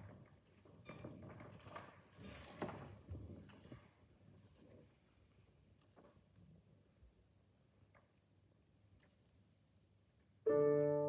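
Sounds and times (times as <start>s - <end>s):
small knocks and rustles: 0.0s - 5.1s.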